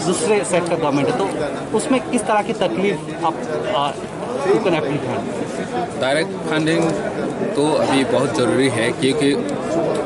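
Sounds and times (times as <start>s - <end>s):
crowd chattering in large hall: 0.0s - 10.0s
people talking: 0.0s - 10.0s.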